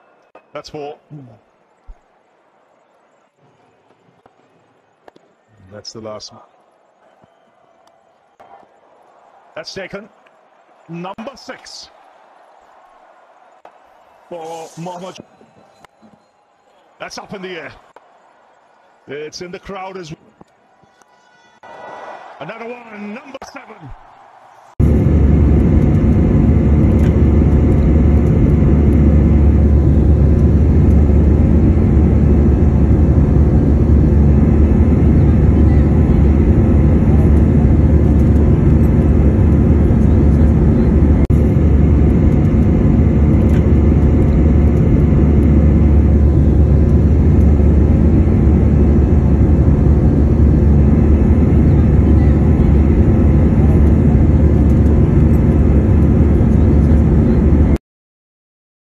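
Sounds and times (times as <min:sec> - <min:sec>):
engine tones humming: 0:24.8 - 0:57.1
deep rumble of jet engine: 0:24.8 - 0:57.8.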